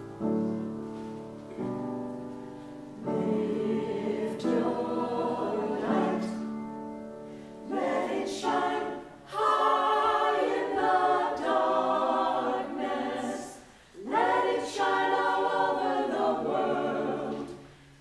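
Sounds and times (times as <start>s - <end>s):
church choir singing: 2.6s - 17.9s.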